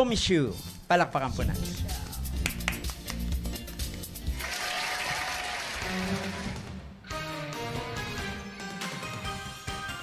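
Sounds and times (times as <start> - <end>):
music with bass beat: 1.3 - 4.4
applause: 2.4 - 3.2, 4.3 - 6.7.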